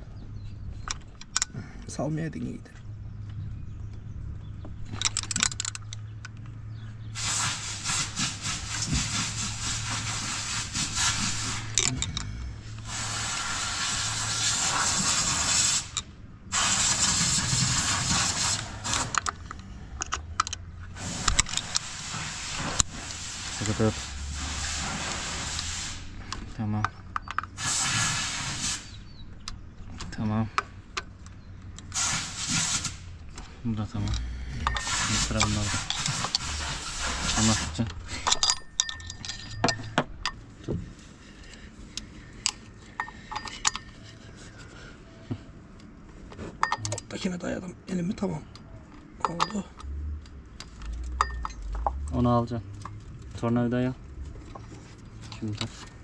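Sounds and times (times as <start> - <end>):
low steady hum: 8.5 - 14.4, 33.0 - 56.0.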